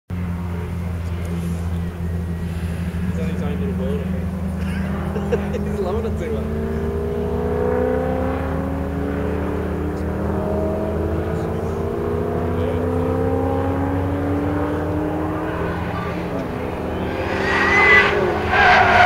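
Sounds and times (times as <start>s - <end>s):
car engine revving: 0.1s - 19.0s
tyre squeal: 17.0s - 19.0s.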